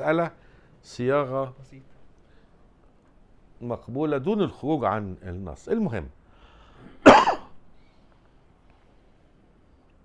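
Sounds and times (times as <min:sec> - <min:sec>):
man clearing his throat: 0:07.0 - 0:07.6.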